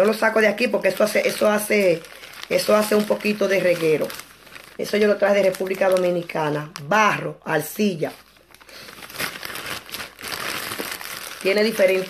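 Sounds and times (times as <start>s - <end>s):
plastic bag crinkling: 0.0s - 7.2s, 7.8s - 12.0s.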